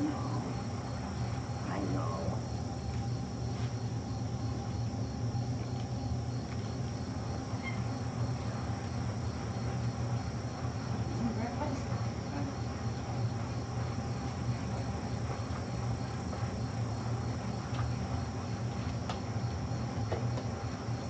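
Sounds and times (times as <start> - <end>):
room hum and hiss: 0.0 - 21.0.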